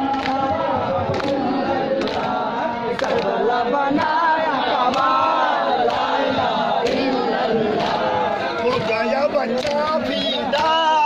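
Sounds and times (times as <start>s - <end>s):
men chanting a lament: 0.0s - 11.0s.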